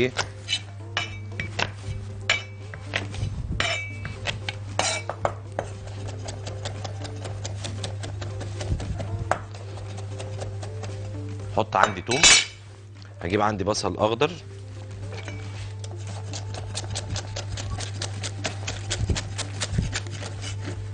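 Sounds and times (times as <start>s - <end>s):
kitchenware clinking: 0.5s - 3.0s, 3.6s - 4.2s, 4.8s - 5.3s, 11.8s - 12.6s.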